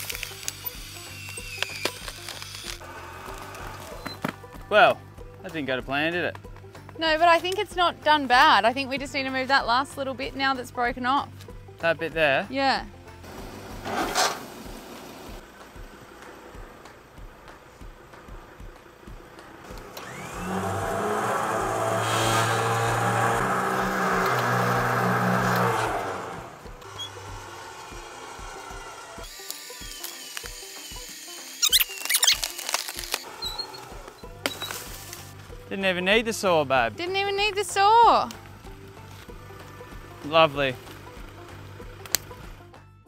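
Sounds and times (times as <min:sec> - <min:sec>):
electric winch motor hum: 0:00.0 - 0:04.2, 0:19.4 - 0:34.8
background music with steady beat: 0:00.0 - 0:13.9, 0:14.5 - 0:31.6, 0:33.6 - 0:43.0.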